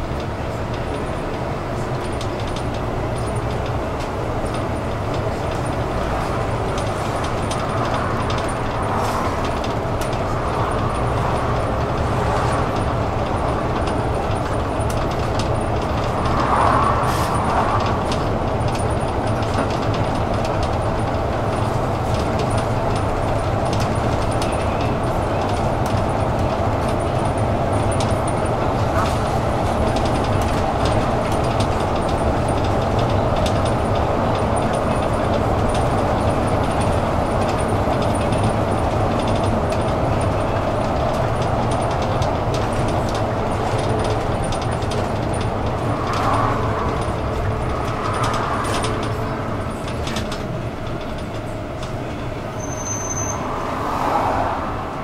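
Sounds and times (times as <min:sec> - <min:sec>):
bus engine and tyre noise: 0:00.0 - 0:55.0
light clicks and rattles: 0:02.0 - 0:52.5.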